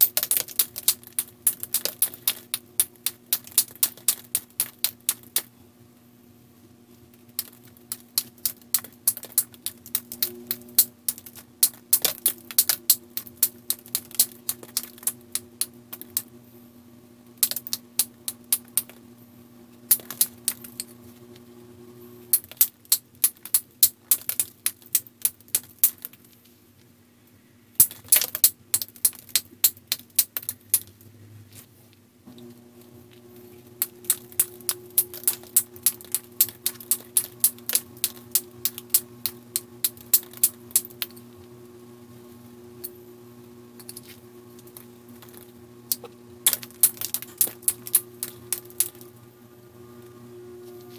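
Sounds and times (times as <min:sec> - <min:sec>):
knapping tool clicking on stone: 0:00.0 - 0:05.5, 0:07.3 - 0:16.3, 0:17.4 - 0:19.0, 0:19.9 - 0:20.9, 0:22.3 - 0:26.2, 0:27.8 - 0:30.9, 0:33.8 - 0:41.2, 0:44.7 - 0:49.0
low steady hum: 0:00.0 - 0:50.9.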